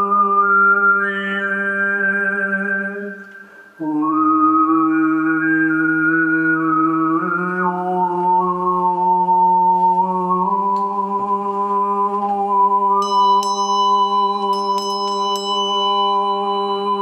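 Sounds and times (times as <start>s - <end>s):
man overtone singing drone: 0.0s - 17.0s
small brass hand bell ringing: 13.0s - 17.0s.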